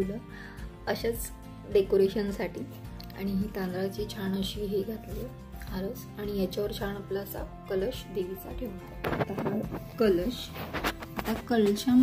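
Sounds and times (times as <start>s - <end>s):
soft background music: 0.0s - 12.0s
woman speaking: 0.0s - 12.0s.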